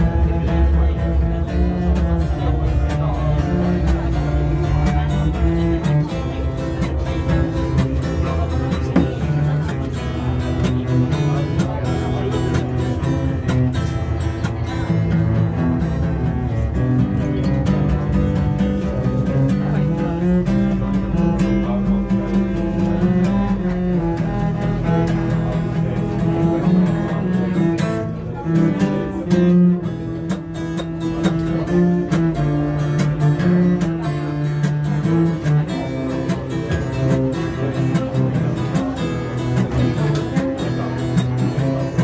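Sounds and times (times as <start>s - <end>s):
acoustic guitar accompaniment: 0.0s - 42.0s
bowed cello melody: 0.0s - 42.0s.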